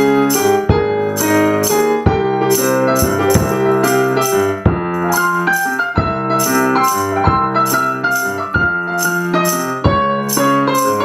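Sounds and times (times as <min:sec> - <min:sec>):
digital piano chords: 0:00.0 - 0:11.0
hand percussion shaker: 0:02.5 - 0:04.4, 0:05.1 - 0:11.0.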